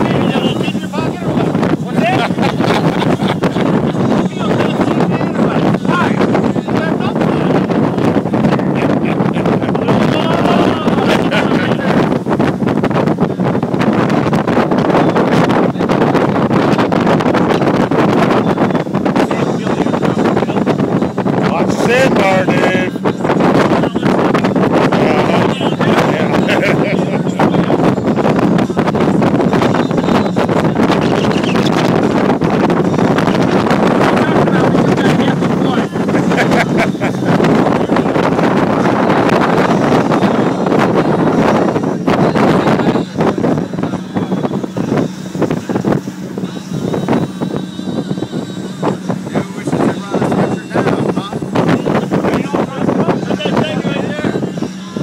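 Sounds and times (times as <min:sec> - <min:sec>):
boat motor rushing: 0:00.0 - 0:55.0
rushing water: 0:00.0 - 0:55.0
wind buffeting microphone: 0:00.0 - 0:55.0.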